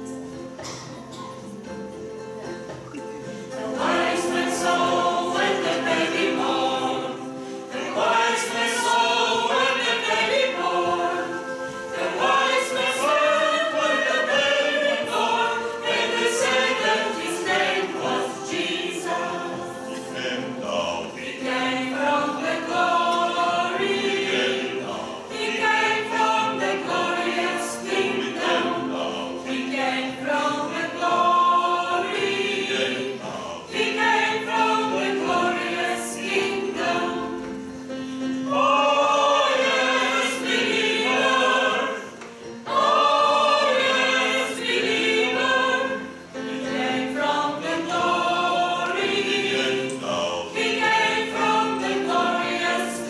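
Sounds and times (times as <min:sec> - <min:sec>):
church choir singing a hymn: 0:02.5 - 0:53.0.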